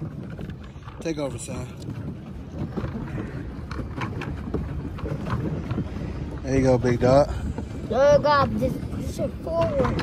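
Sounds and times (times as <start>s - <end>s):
water churning and lapping: 0.0s - 10.0s
wind buffeting microphone: 0.0s - 10.0s.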